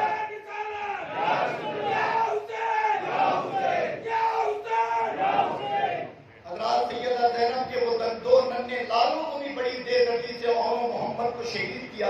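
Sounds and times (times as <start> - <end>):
voices chanting in a hall: 0.0 - 6.4.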